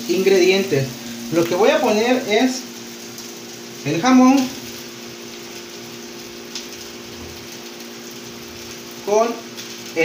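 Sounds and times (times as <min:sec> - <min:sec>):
meat sizzling on a griddle: 0:00.0 - 0:10.0.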